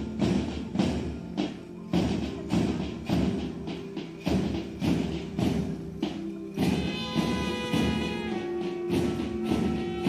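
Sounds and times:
heavy drum beat: 0:00.0 - 0:10.0
march music: 0:00.0 - 0:10.0.

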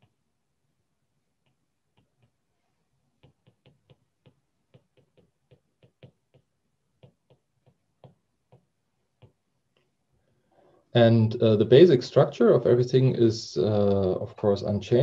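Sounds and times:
stylus tapping on tablet: 0:01.4 - 0:02.4, 0:03.2 - 0:09.9.

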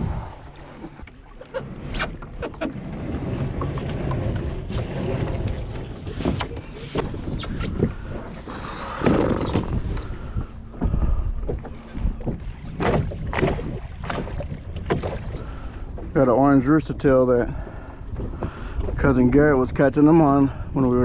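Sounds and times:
wind rumble on microphone: 0:00.0 - 0:01.1, 0:01.8 - 0:21.0.

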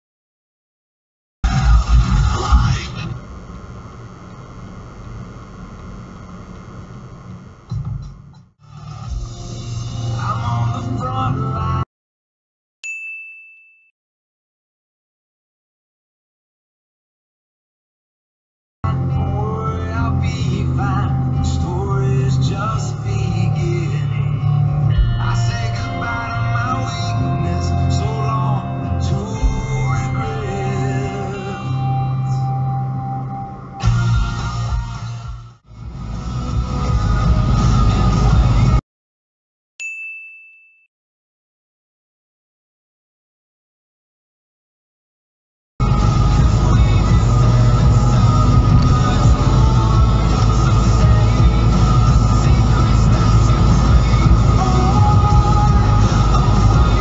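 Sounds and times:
bell-like ding: 0:12.8 - 0:13.9, 0:39.8 - 0:40.9.

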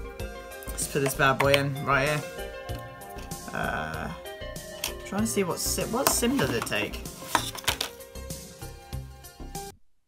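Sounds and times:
background music: 0:00.0 - 0:09.8
paper and plastic handling: 0:05.9 - 0:08.0.

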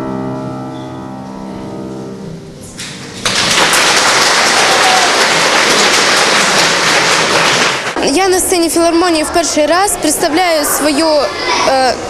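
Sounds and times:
piano notes: 0:00.0 - 0:08.0
audience applauding: 0:02.8 - 0:08.0.

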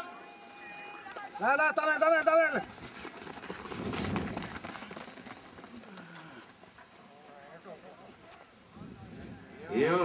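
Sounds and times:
runners' footfalls on track: 0:02.2 - 0:07.2.

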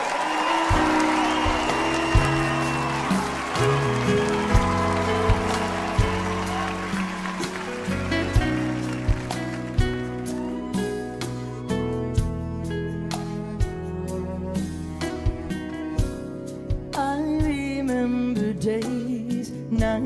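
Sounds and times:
audience applause and cheering: 0:00.0 - 0:12.2
live band playing slow ballad: 0:00.0 - 0:20.0.

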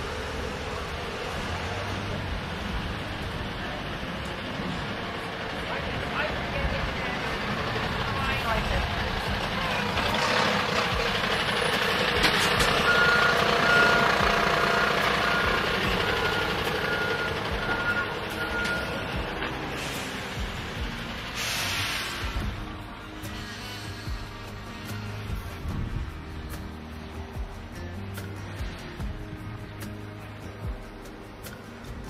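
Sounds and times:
diesel engine running: 0:00.0 - 0:32.0
reversing alarm beeping: 0:12.6 - 0:20.2.

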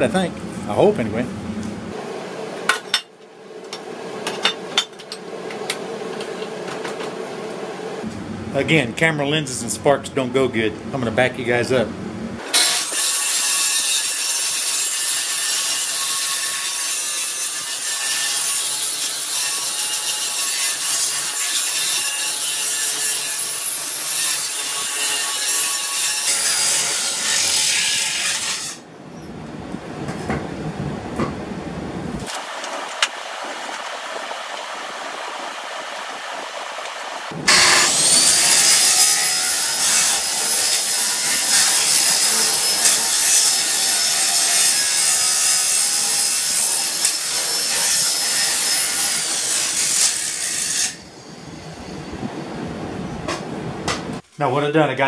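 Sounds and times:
angle grinder grinding steel: 0:12.4 - 0:28.9, 0:35.7 - 0:51.1.

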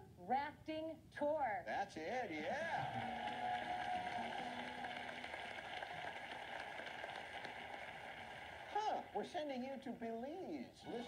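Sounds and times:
audience applauding: 0:02.4 - 0:09.6.

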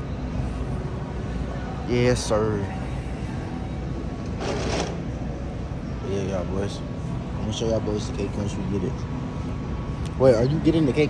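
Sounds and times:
store background hum: 0:00.0 - 0:11.0.

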